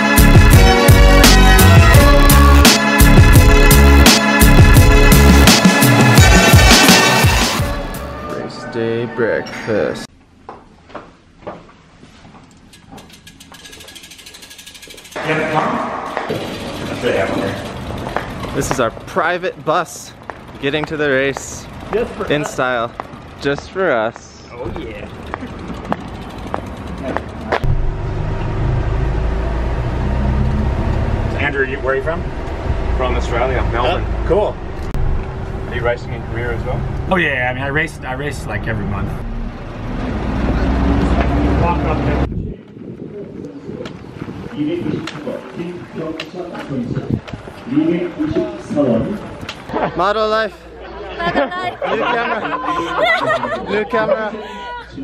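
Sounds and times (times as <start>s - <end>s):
bicycle freewheel hub ticking: 12.6s - 15.6s, 16.3s - 27.6s
bus engine and road rumble: 15.8s - 50.1s.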